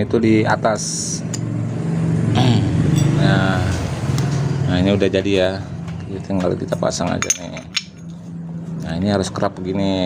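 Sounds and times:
vehicle engine humming: 0.0 - 9.8.

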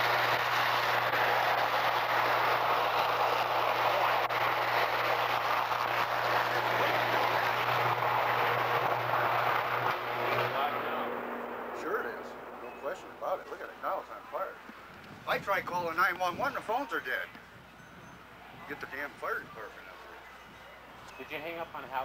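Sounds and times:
electrical arc roaring hiss: 0.0 - 13.9
low hum: 0.0 - 15.0.

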